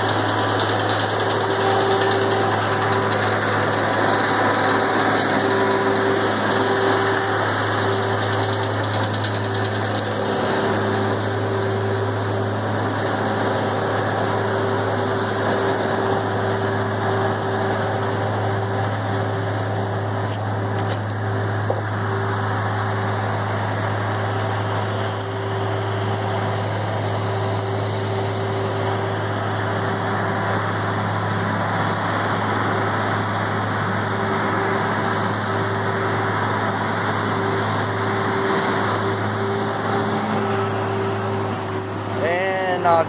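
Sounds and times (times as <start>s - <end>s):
heavy machinery engine humming: 0.0s - 43.0s.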